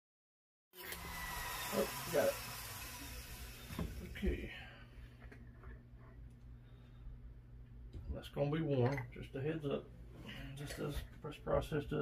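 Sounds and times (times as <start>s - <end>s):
rotary tool whining down: 0.8s - 4.2s
steady low hum: 3.2s - 12.0s.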